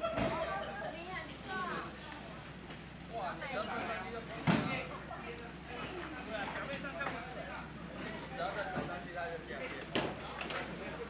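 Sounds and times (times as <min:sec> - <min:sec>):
people talking: 0:00.0 - 0:11.0.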